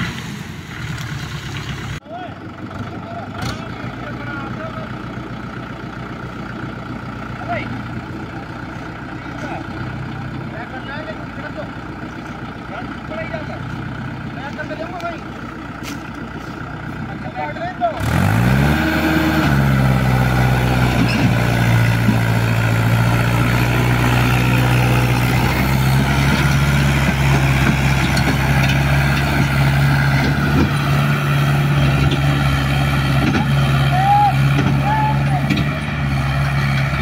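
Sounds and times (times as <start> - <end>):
tractor diesel engine under load: 0.0 - 37.0.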